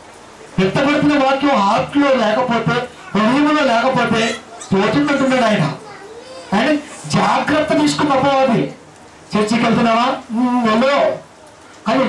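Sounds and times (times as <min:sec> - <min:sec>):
man talking into a microphone: 0:00.6 - 0:05.8, 0:06.5 - 0:11.2.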